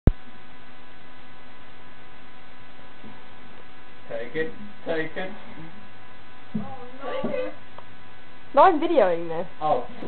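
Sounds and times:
electrical hum and hiss: 0.1s - 10.0s.

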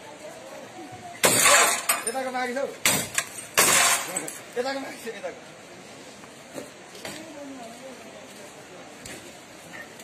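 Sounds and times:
rod smashing windshield glass: 1.2s - 2.0s, 2.8s - 4.3s
glass crunching: 1.2s - 2.2s, 2.9s - 4.4s.

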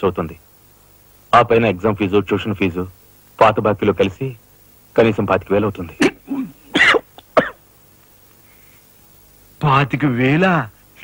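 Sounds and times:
man coughing and sputtering: 6.0s - 7.6s.

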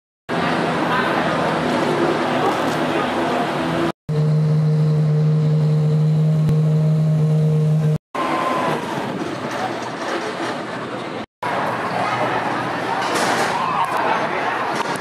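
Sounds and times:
busy garage noise: 0.3s - 15.0s
race car engine humming: 1.3s - 8.0s.

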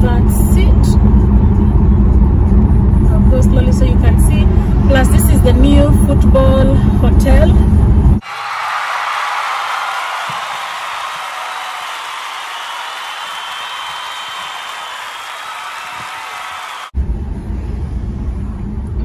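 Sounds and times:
crowd cheering: 8.2s - 17.0s.

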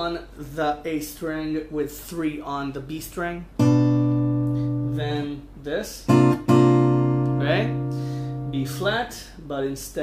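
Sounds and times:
acoustic guitar chord ringing: 3.6s - 5.0s, 6.1s - 8.8s.

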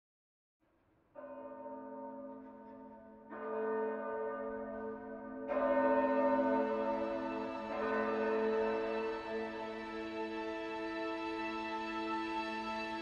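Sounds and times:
church bells ringing: 1.2s - 13.0s.

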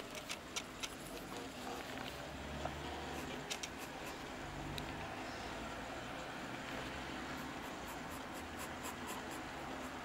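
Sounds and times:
pencil scratching on paper: 7.3s - 10.0s.

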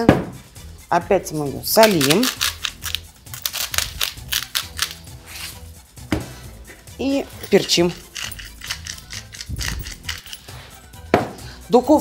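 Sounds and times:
salt mill grinding clicks: 1.8s - 5.0s, 7.9s - 10.4s.

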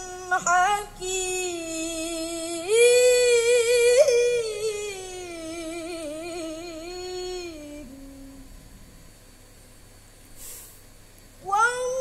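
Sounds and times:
boy chanting melodic recitation: 0.0s - 8.4s, 11.4s - 12.0s
quick breath: 10.4s - 10.9s.

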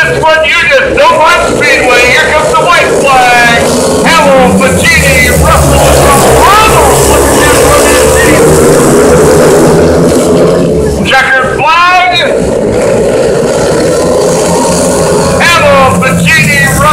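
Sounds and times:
motorcycle engines racing: 0.0s - 16.9s.

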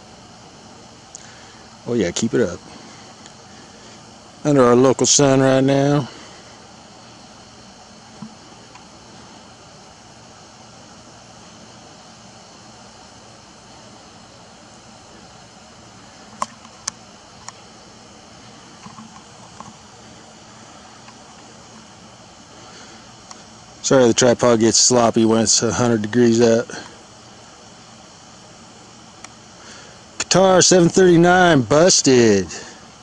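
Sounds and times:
outdoor background hiss: 0.0s - 33.0s.

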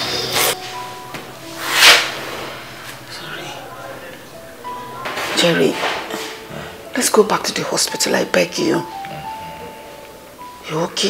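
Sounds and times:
breathy whoosh: 1.4s - 5.0s.

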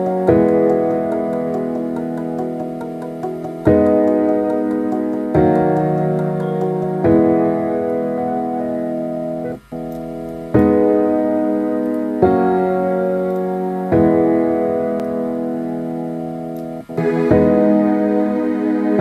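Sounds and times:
slow piano chords: 0.0s - 19.0s.

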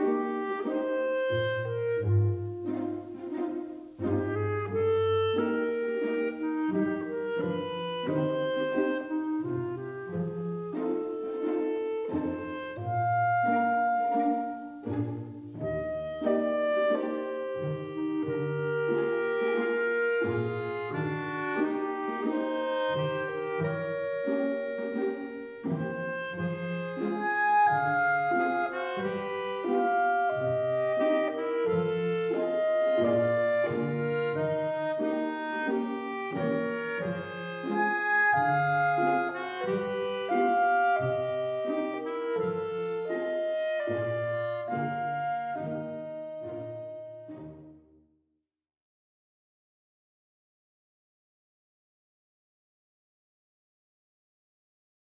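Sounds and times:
instrumental background music: 0.0s - 48.1s.

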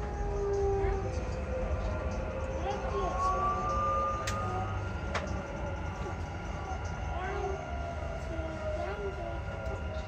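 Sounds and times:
train rumble with motor whine: 0.0s - 10.0s.

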